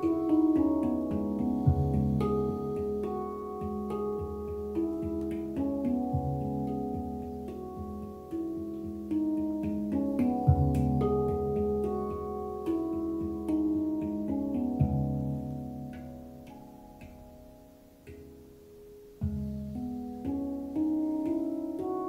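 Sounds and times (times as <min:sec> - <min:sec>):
handpan melody: 0:00.0 - 0:22.0.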